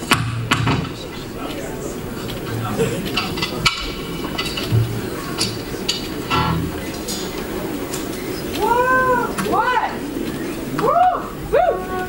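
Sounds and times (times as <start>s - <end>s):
quiet band backing: 0.0s - 8.4s.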